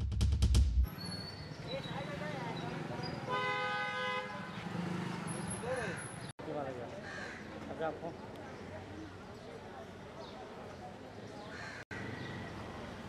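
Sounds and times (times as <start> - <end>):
street background noise: 0.8 - 13.0
vehicle horn honk: 3.1 - 4.8.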